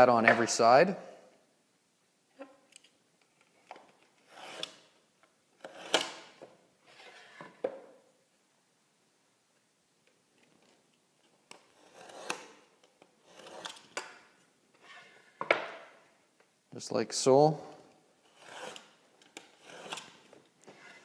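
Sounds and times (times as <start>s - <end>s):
knife scoring drywall: 11.5s - 14.2s, 18.3s - 21.0s.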